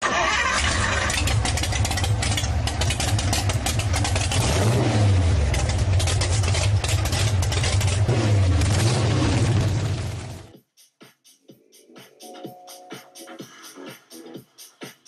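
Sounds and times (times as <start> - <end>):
vehicle engine starting and revving: 0.0 - 10.5.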